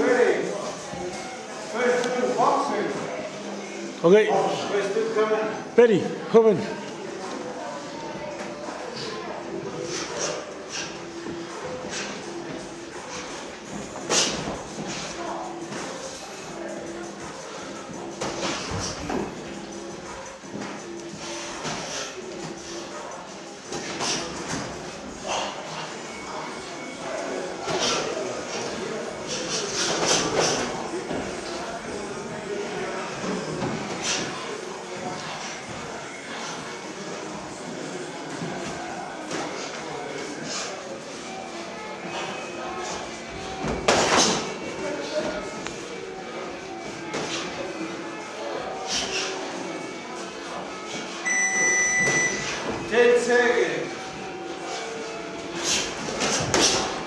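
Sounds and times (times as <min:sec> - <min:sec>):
voices echoing in a hall: 0:00.0 - 0:57.0.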